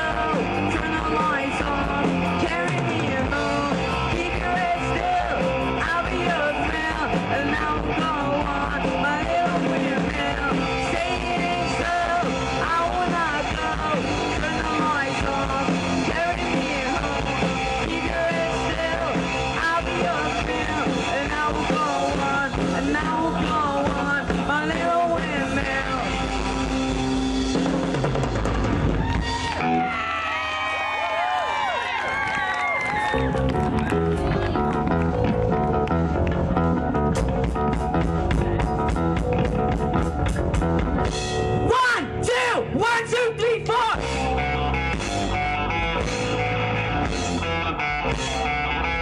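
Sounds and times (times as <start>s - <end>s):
live rock band playing: 0.0s - 30.9s, 31.5s - 49.0s
bass guitar: 0.0s - 49.0s
drums: 0.0s - 49.0s
electric guitar: 0.0s - 49.0s.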